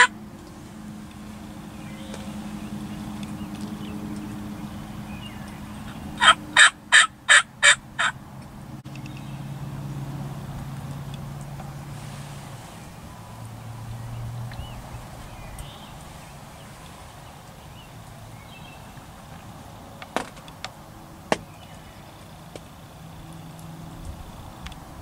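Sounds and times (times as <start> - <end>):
turkey yelps: 6.2 - 8.2.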